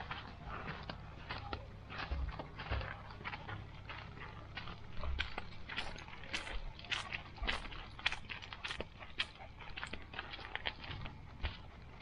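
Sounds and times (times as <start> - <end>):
dog paws crunching on gravel: 0.0 - 12.0.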